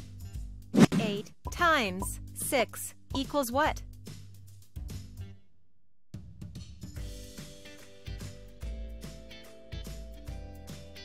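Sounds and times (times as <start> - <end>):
background music with held notes: 6.6 - 11.0.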